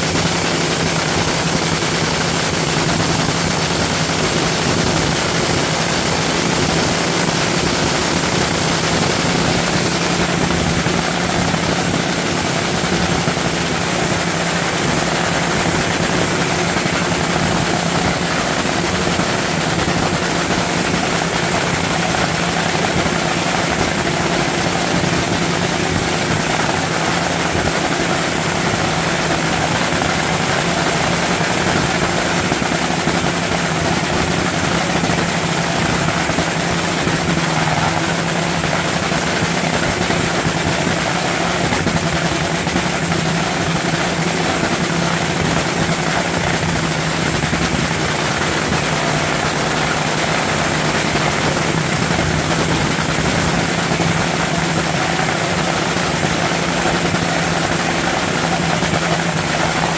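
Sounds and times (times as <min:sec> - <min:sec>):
dragster engine idling: 0:00.0 - 0:59.9.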